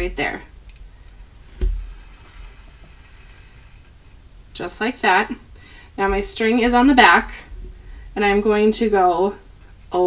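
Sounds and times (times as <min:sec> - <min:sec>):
short thump: 0:01.6 - 0:02.0.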